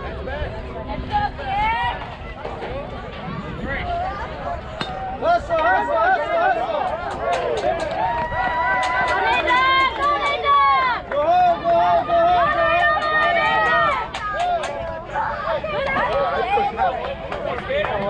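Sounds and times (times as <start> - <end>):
people yelling and cheering: 1.0 - 17.8.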